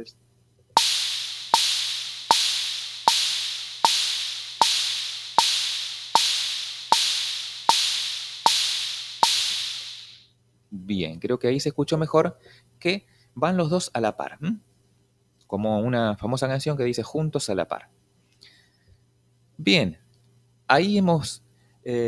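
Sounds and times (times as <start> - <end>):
drum machine hi-hat and bongo: 0.8 - 10.2.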